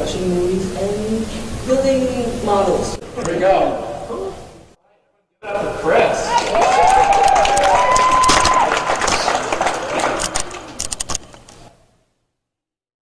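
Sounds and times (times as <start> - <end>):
audience applauding and cheering: 6.2 - 10.9
shouted whoops: 6.3 - 9.3.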